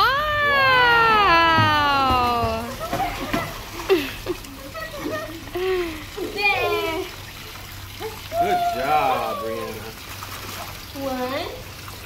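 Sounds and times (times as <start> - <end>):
children and woman calling: 0.0 - 7.2, 8.0 - 9.8
pool water splashing: 0.0 - 12.0
person saying wow: 8.4 - 9.8.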